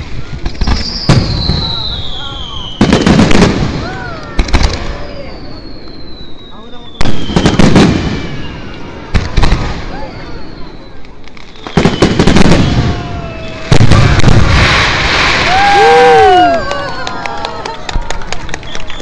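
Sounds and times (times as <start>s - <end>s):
crowd voices: 0.0s - 19.0s.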